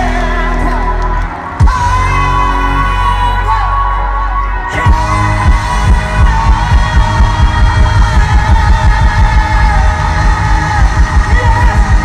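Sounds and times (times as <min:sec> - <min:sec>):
rapid bass drum beat: 0:00.0 - 0:03.2, 0:04.8 - 0:12.0
electric guitar: 0:00.0 - 0:12.0
hard rock band playing loudly: 0:00.0 - 0:12.0
man singing: 0:00.0 - 0:12.0.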